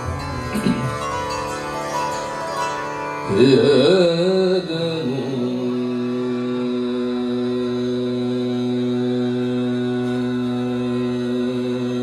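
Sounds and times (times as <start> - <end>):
harmonium: 0.0 - 12.0
tanpura drone: 0.0 - 12.0.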